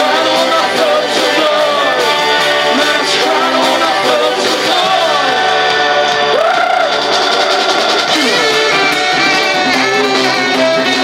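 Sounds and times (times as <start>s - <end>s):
guitar lead line sliding up: 0.0s - 11.0s
rock band playing: 0.0s - 11.0s.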